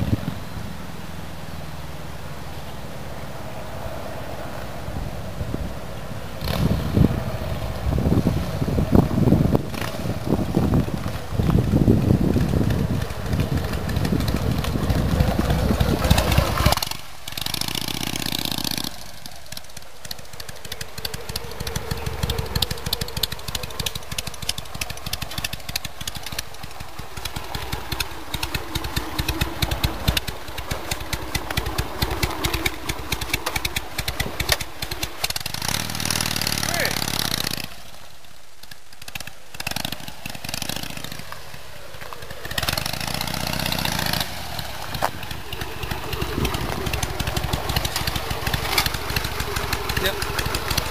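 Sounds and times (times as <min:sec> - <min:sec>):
motorcycle engine running: 0:04.9 - 0:50.9.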